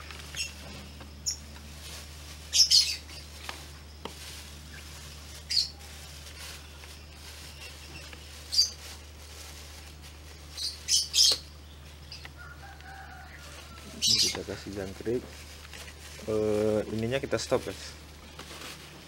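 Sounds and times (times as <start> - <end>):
high bird chirps: 2.5 - 3.3, 5.4 - 5.8, 10.5 - 12.3.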